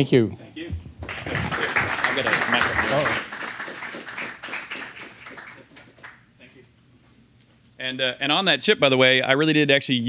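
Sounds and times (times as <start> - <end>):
man speaking: 0.2 - 3.2
audience applauding: 0.9 - 6.2.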